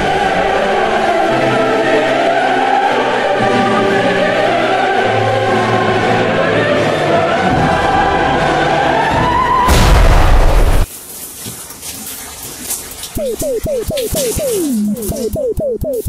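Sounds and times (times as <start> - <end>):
choir singing held chords: 0.0 - 9.8.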